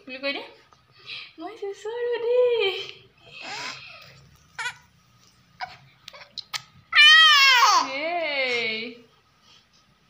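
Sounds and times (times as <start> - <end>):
baby squealing and giggling: 3.3 - 4.9.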